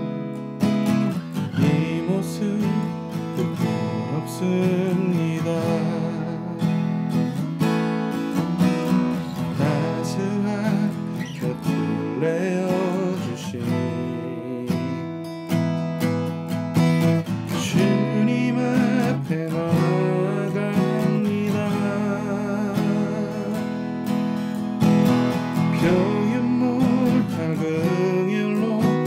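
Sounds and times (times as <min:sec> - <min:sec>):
acoustic guitar strumming: 0:00.0 - 0:29.0
man singing: 0:01.4 - 0:07.3, 0:09.2 - 0:15.4, 0:17.2 - 0:24.2, 0:25.4 - 0:29.0.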